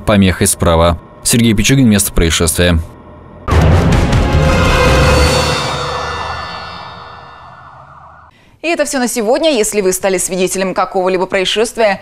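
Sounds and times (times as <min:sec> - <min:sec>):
sustained electronic chord: 0:03.4 - 0:08.2.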